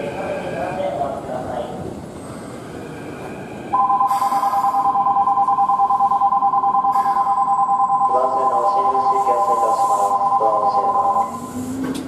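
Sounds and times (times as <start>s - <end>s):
low rail-yard rumble: 0.0s - 5.6s, 7.0s - 12.0s
electronic bell ringing: 3.8s - 11.4s.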